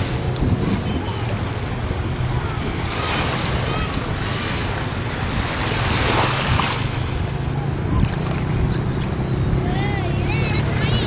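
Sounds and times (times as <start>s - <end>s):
small waves on rocky shore: 0.0s - 11.0s
wind rumbling on microphone: 0.0s - 11.0s.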